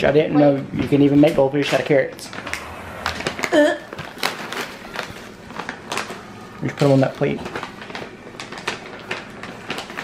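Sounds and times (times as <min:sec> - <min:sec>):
handling noise of objects moved: 0:01.6 - 0:10.0.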